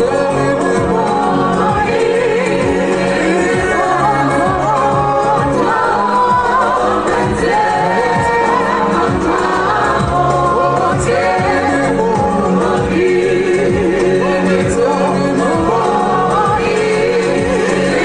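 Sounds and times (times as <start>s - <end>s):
group singing into microphones: 0.0s - 18.0s.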